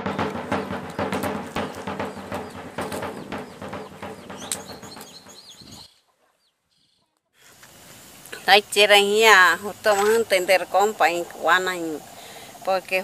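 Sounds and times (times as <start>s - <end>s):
low steady drone: 0.0s - 5.3s
rapid drumming: 0.0s - 5.9s
birds chirping: 0.0s - 7.3s.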